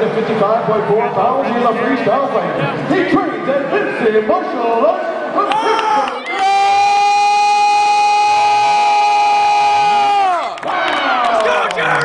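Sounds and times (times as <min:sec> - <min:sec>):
crowd cheering and whooping: 0:05.5 - 0:11.7.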